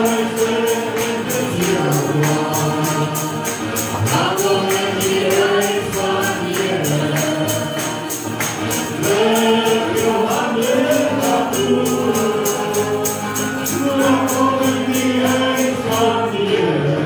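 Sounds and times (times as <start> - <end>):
group singing worship song: 0.0 - 17.0
jingling percussion beat: 0.0 - 17.0.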